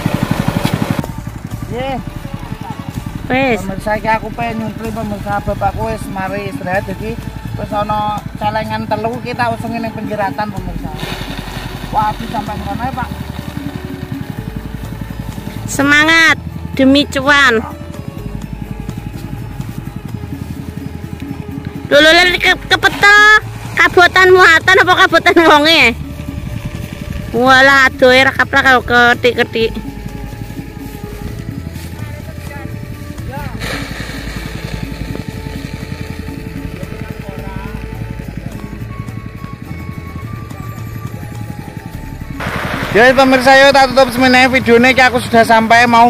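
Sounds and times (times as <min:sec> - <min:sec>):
threshing machine engine running: 0:00.0 - 0:46.0.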